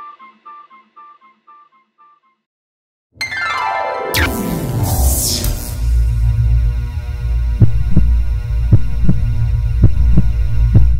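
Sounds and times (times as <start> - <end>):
low electronic drone: 4.1 - 10.9
heartbeat-like double thumps: 7.4 - 10.9.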